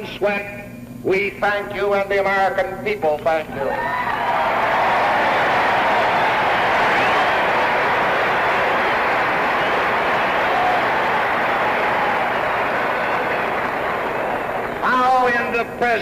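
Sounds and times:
crowd applauding and cheering: 3.6 - 16.0.

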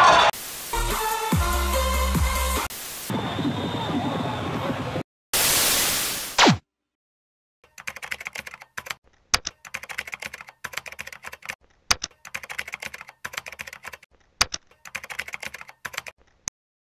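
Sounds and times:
computer keyboard typing: 7.7 - 16.2.

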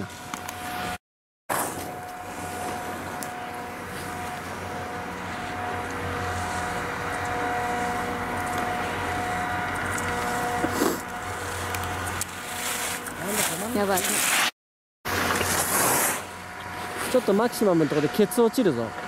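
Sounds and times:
steady mechanical hum: 0.0 - 14.4, 15.1 - 19.0.

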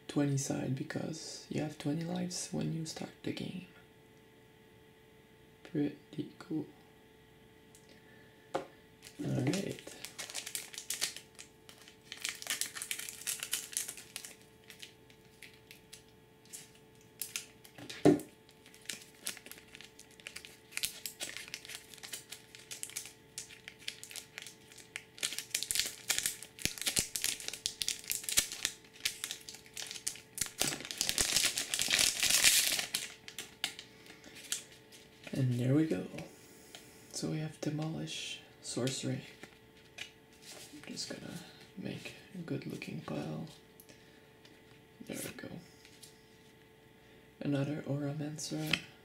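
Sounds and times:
foil wrapper crinkling: 9.0 - 35.6.

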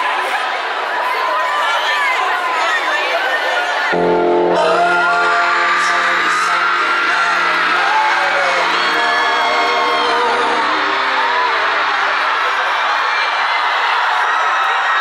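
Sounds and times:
crowd screaming: 0.0 - 15.0
held chord over sound system: 3.9 - 14.3.

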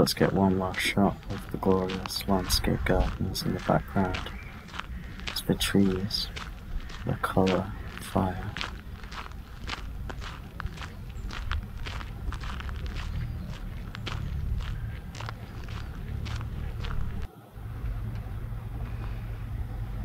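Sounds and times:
footsteps on gravel: 0.0 - 17.3
steady low rumble: 0.0 - 20.0.

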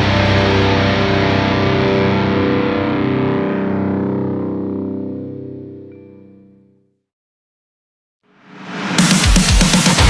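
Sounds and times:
distorted electric guitar chord: 0.0 - 6.0.

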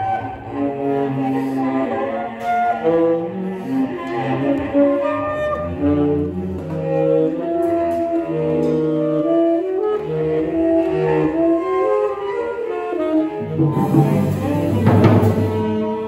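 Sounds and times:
low bowed cello tones: 0.0 - 16.0
tenor saxophone improvising: 0.0 - 16.0.

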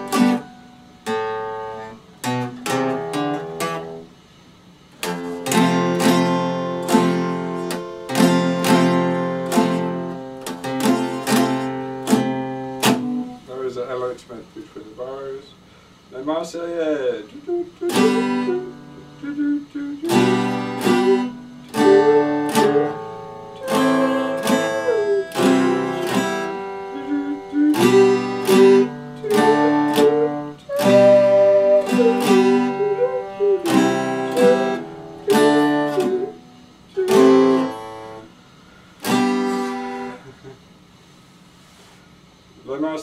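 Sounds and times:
acoustic guitar strumming chords: 0.0 - 13.9, 17.3 - 40.5.

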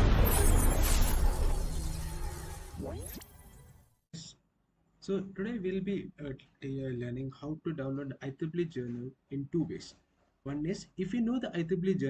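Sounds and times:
loud noisy hit: 0.0 - 2.9.

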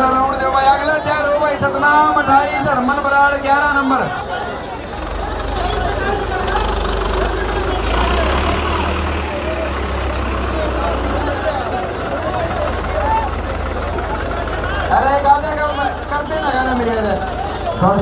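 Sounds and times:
crowd chatter: 0.0 - 18.0
diesel tractor engines rumbling: 0.0 - 18.0.

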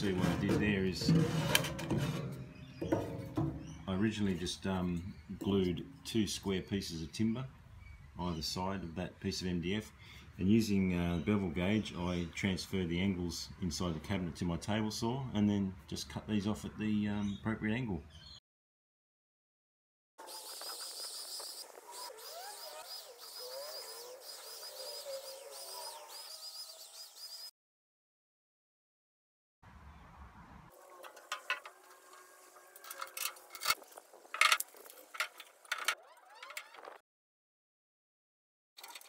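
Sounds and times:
low gliding bird calls: 20.2 - 27.5
high bird chirps: 20.3 - 27.5.

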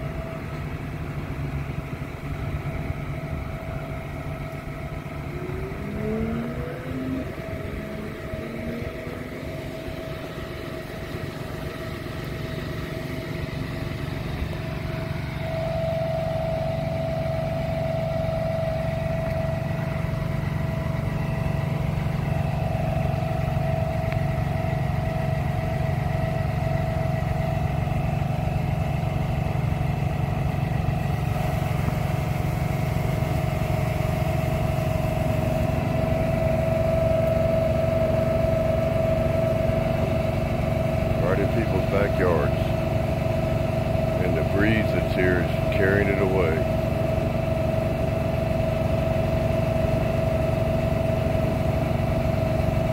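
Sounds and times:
small engine driving a pump: 0.0 - 52.9.

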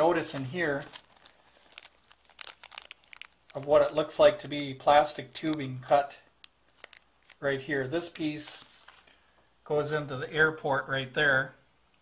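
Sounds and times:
plastic bag crinkling: 0.0 - 4.3, 6.4 - 9.2.

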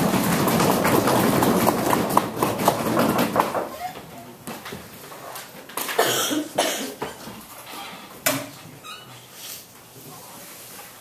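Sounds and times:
low background noise: 0.0 - 11.0.

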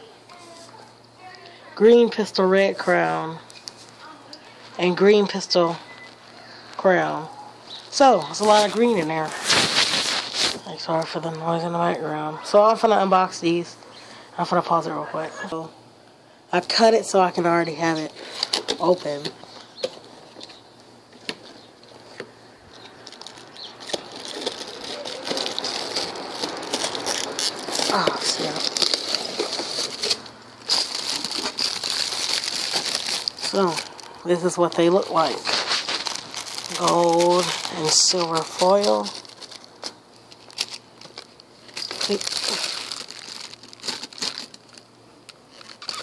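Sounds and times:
rustling: 7.6 - 10.7, 18.0 - 46.0
plastic film crinkling: 7.7 - 11.9, 16.7 - 46.0.

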